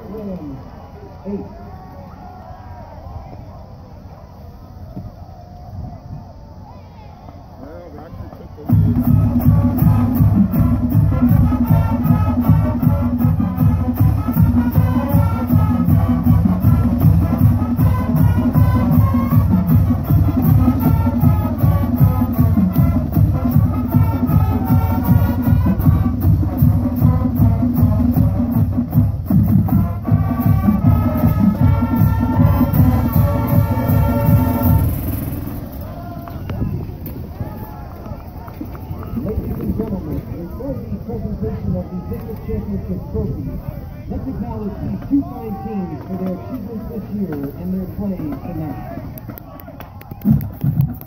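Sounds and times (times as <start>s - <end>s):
crowd voices: 0.0s - 51.0s
drumline: 8.0s - 40.4s, 44.2s - 51.0s
marching band playing: 8.6s - 37.6s, 50.2s - 51.0s.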